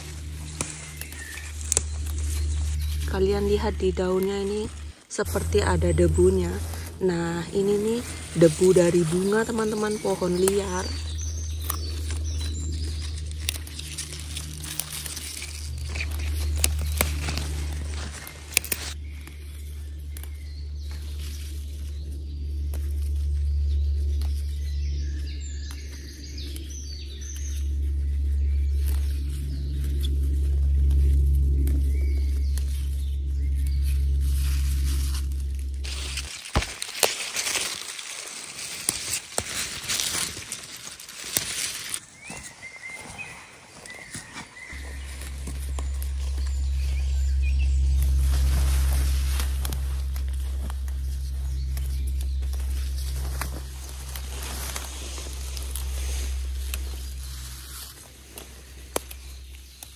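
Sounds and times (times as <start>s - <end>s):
plant stems snapping: 0.0s - 5.0s, 6.8s - 42.5s, 43.8s - 59.9s
footsteps on forest floor: 0.0s - 59.9s
low rumble: 0.0s - 59.9s.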